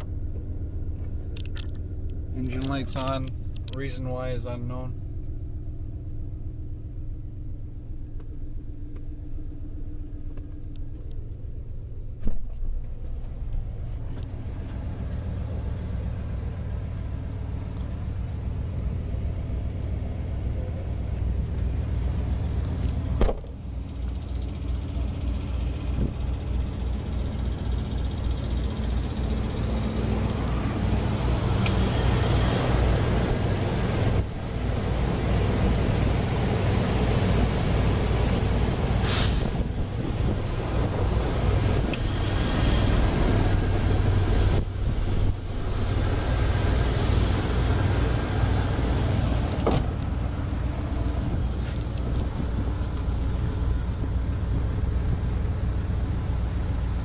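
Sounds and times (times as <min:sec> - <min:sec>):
pickup truck engine idling: 0:00.0 - 0:57.0.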